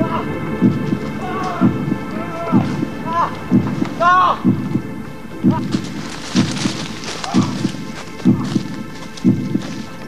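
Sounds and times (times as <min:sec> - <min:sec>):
low double thump: 0:01.6 - 0:06.8.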